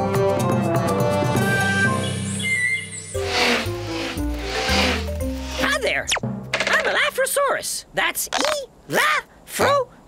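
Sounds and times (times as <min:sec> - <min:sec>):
whooshing swells: 0:03.0 - 0:06.2.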